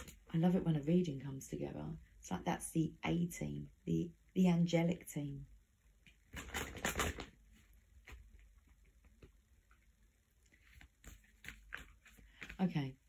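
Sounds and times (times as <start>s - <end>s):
cards rustling: 6.3s - 9.3s, 10.5s - 12.8s.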